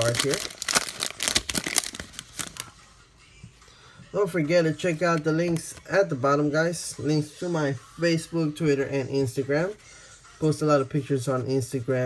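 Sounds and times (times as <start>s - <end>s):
foil wrapper crinkling: 0.0s - 2.7s.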